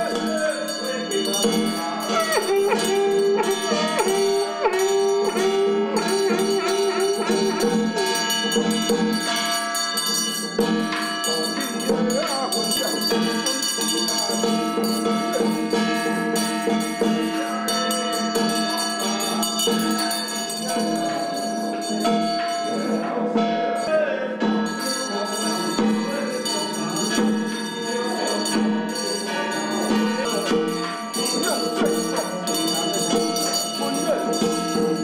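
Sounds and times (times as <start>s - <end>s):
wind instrument melody: 0.0s - 9.4s
hand bell ringing: 0.0s - 35.0s
percussion: 0.0s - 35.0s.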